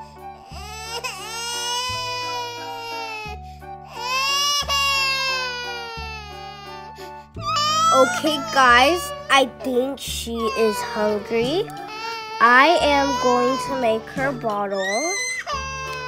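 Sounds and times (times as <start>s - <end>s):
background music: 0.0s - 16.0s
baby crying: 0.4s - 16.0s.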